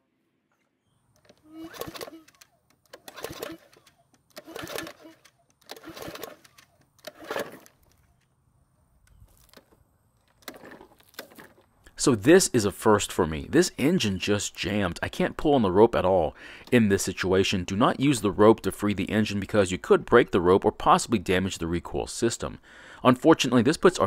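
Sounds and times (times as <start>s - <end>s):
lawn mower starter rope tugs: 1.1s - 8.3s, 9.1s - 11.9s.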